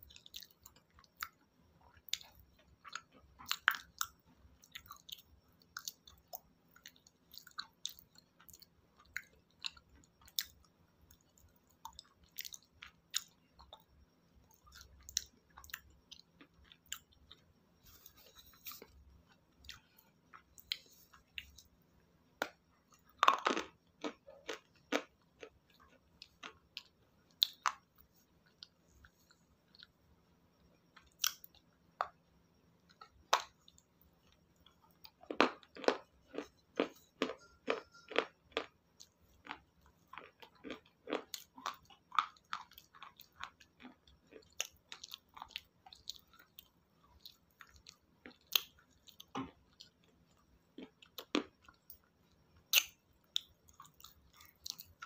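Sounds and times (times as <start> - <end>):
person chewing crunchy salad: 0.1 - 13.9, 14.5 - 21.7, 22.4 - 30.0, 31.0 - 32.2, 32.9 - 55.0.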